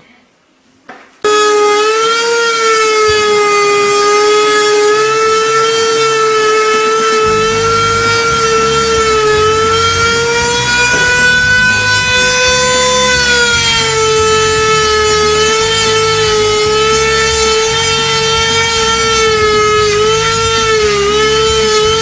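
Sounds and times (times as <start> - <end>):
router spindle high whine: 1.2 - 22.0
uneven cutting rumble: 2.6 - 22.0.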